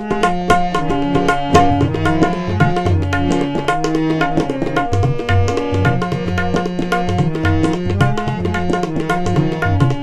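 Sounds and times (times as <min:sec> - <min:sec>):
hand drum fast rhythm: 0:00.0 - 0:10.0
held melodic line: 0:00.0 - 0:10.0.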